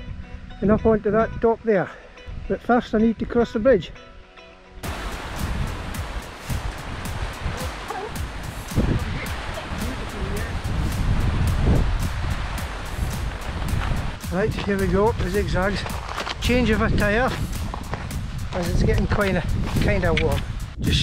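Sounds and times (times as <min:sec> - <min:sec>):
wind buffeting microphone: 0:04.8 - 0:21.0.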